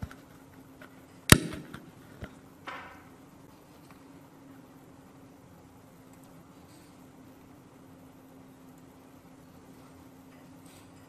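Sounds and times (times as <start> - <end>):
low steady hum: 0.0 - 11.0
faint clicks: 6.1 - 6.4.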